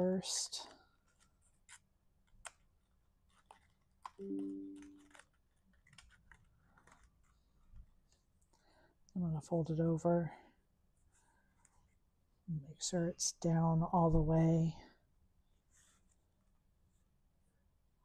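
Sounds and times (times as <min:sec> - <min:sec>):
cardstock clicks and rustles: 0:01.0 - 0:07.4.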